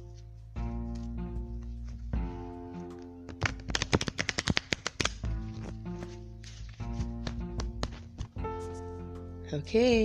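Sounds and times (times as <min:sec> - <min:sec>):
soft background music: 0:00.0 - 0:10.0
cards shuffling clicks: 0:02.9 - 0:08.4.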